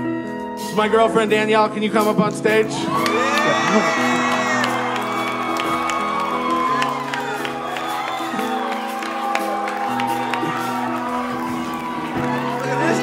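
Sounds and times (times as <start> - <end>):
live band playing held chords: 0.0 - 13.0
audience cheering and whooping: 2.8 - 13.0.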